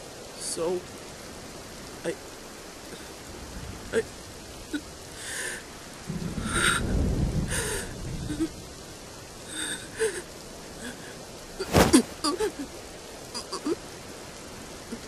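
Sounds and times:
steady rain: 0.0s - 15.0s
low rumble of thunder: 5.9s - 10.0s.

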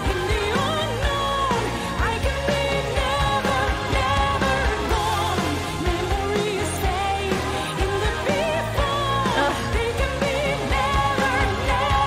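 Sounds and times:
rock band with drums: 0.0s - 12.0s
female vocal with vibrato: 6.1s - 12.0s.

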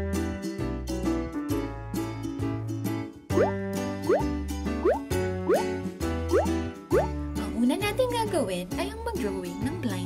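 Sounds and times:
playful children's music: 0.0s - 10.0s.

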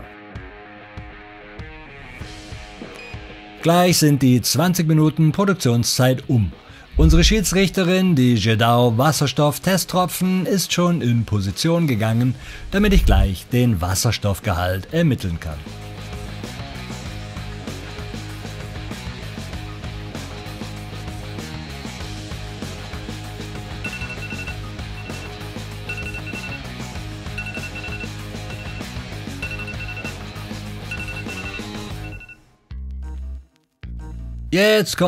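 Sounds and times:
background music with steady beat: 0.0s - 3.7s, 6.3s - 9.2s, 15.3s - 34.6s
phone timer alarm two-tone beeps: 23.8s - 26.7s, 27.4s - 30.2s, 30.9s - 32.4s.

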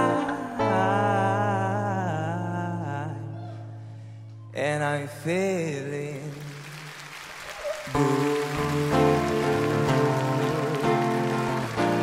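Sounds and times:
guitar strummed chords: 8.0s - 12.0s.

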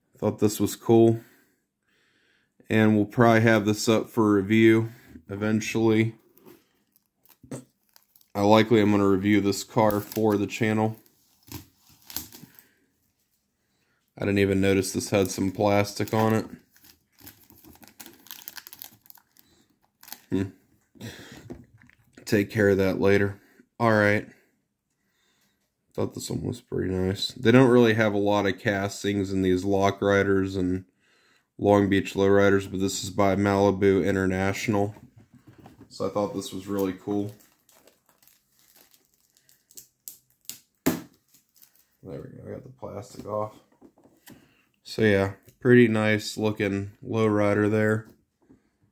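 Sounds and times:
cardboard and plastic film crinkling: 6.3s - 12.7s, 14.7s - 20.5s, 35.4s - 42.1s
plastic film snap: 36.8s - 41.8s.

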